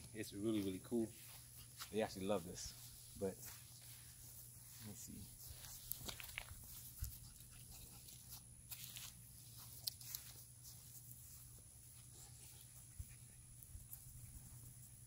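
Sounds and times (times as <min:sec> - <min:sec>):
rustles and footsteps on grass: 0:00.0 - 0:15.0.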